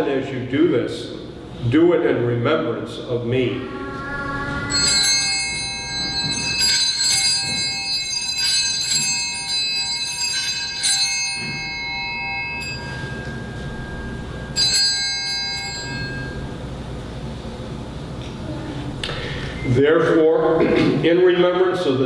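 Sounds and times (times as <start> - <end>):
altar bells ringing: 3.5 - 17.5.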